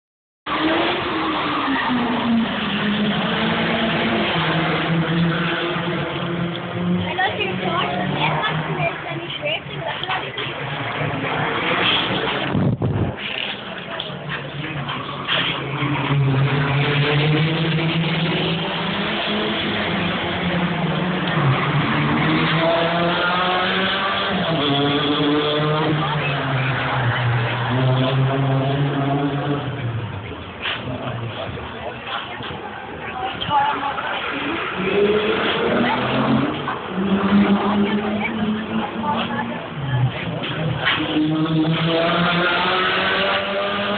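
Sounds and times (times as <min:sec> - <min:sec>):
race car engines revving: 0:00.5 - 0:43.9.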